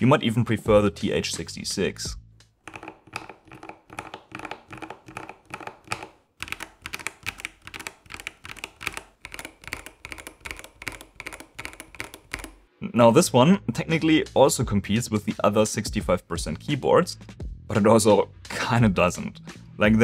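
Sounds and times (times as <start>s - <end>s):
mechanical keyboard typing: 2.7s - 12.7s.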